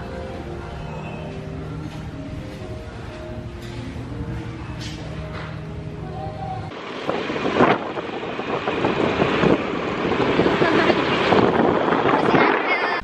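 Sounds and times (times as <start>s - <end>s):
scooter road noise: 4.0s - 13.0s
wind buffeting microphone: 6.7s - 13.0s.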